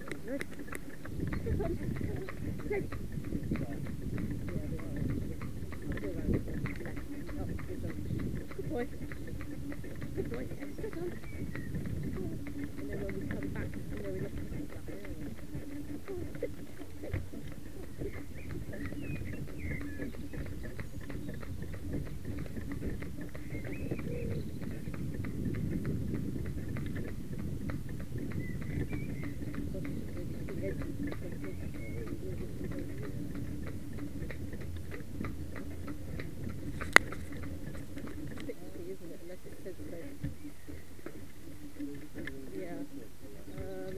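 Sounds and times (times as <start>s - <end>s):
carriage wheels rumbling: 0.0s - 43.9s
horse hooves clip-clopping on tarmac: 0.0s - 43.9s.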